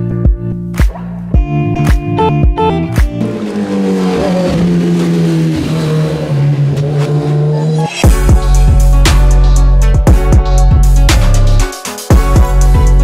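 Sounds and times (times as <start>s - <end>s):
background music: 0.0s - 13.0s
motorcycle engine running: 2.4s - 10.6s.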